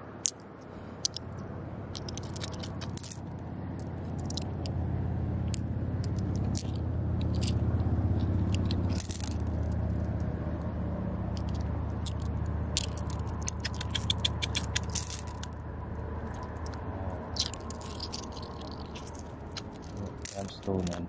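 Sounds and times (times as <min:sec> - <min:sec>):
low rumble: 0:00.9 - 0:21.0
glass pebbles clicking and scraping: 0:01.0 - 0:01.2, 0:01.9 - 0:04.7, 0:05.5 - 0:09.9, 0:11.3 - 0:15.6, 0:16.3 - 0:21.0.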